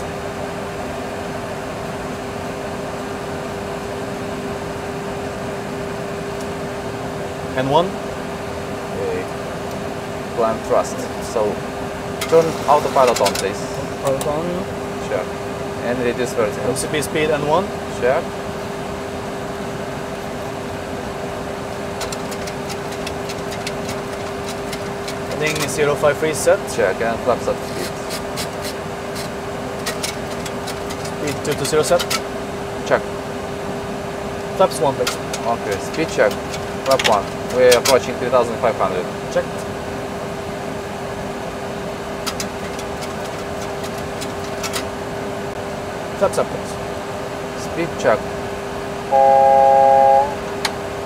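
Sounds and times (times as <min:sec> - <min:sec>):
cockpit hum: 0:00.6 - 0:40.0, 0:48.9 - 0:51.0
constant tone: 0:49.1 - 0:50.6.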